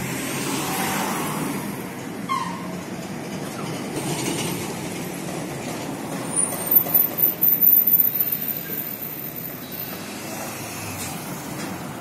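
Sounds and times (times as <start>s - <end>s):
heavy vehicle engines rumbling: 0.0s - 12.0s.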